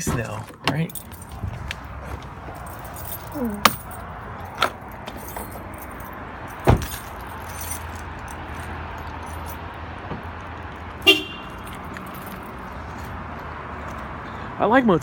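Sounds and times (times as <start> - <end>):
outdoor background noise: 0.0 - 15.0
car door slamming: 6.6 - 7.1
car horn chirp: 11.0 - 11.8.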